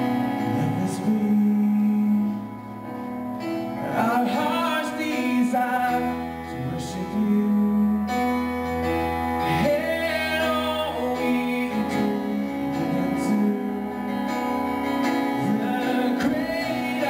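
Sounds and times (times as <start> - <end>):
man singing: 0.0 - 17.0
sustained keyboard chords: 0.0 - 17.0.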